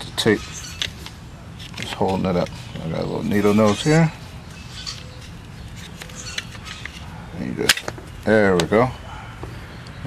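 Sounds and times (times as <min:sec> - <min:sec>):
steady background noise: 0:00.0 - 0:10.0.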